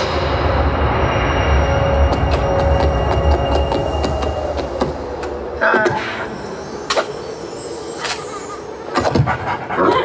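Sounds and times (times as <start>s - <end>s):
faint sustained tones: 0.0s - 9.0s.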